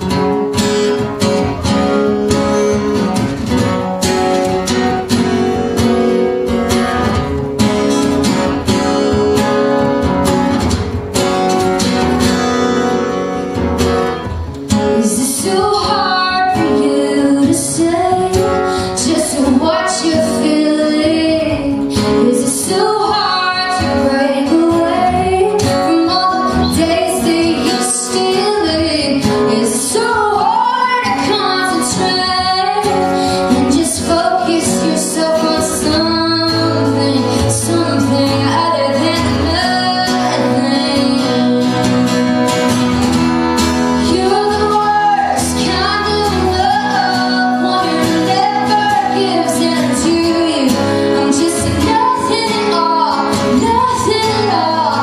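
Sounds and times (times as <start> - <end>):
strummed acoustic guitars: 0.0 - 55.0
woman singing: 14.7 - 42.6, 43.9 - 55.0.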